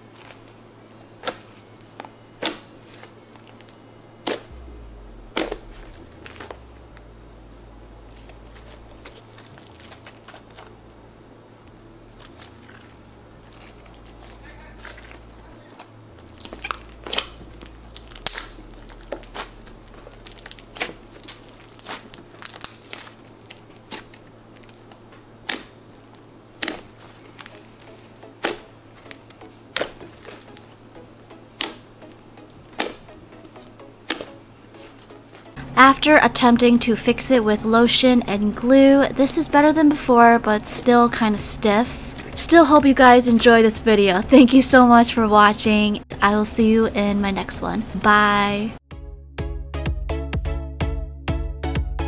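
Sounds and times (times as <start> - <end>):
slime squeezed with sticky pops: 12.2 - 34.4.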